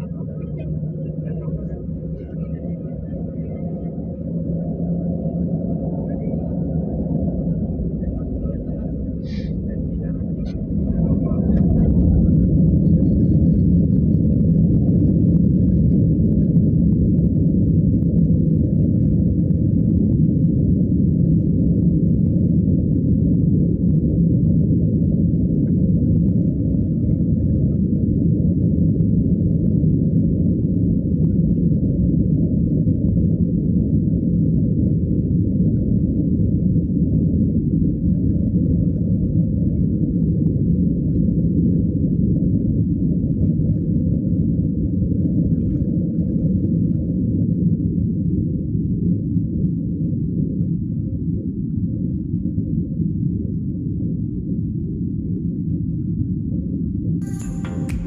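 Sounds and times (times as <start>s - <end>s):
jet engines drone from cabin: 0.0s - 58.0s.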